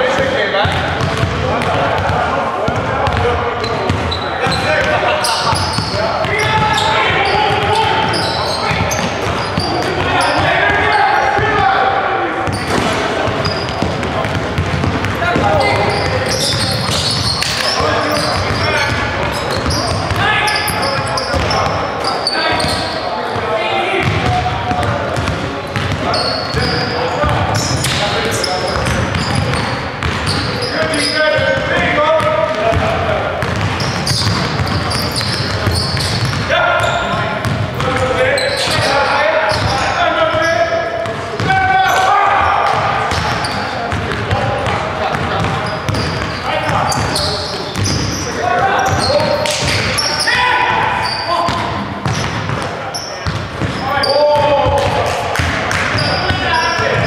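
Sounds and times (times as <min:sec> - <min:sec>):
players shouting: 0:00.0 - 0:57.0
basketball bouncing on hardwood: 0:00.6 - 0:02.1, 0:12.5 - 0:17.2, 0:24.0 - 0:26.1, 0:28.8 - 0:30.4.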